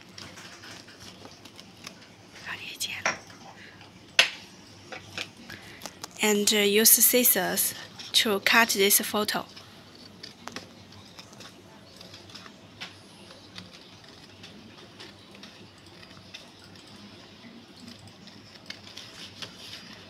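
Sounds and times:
scissors snipping paper: 9.9 - 20.0.

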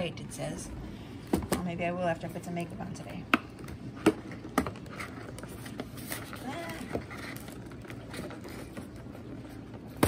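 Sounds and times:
card rustling and scraping: 4.2 - 10.0.

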